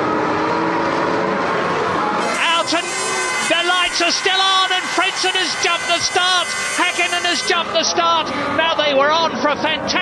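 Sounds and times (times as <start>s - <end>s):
racing car engines howling: 0.0s - 10.0s.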